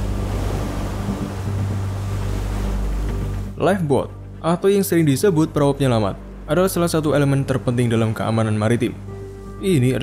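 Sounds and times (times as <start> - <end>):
wind buffeting microphone: 0.0 - 3.5
breaking surf: 0.0 - 3.6
boat engines droning: 0.0 - 4.4.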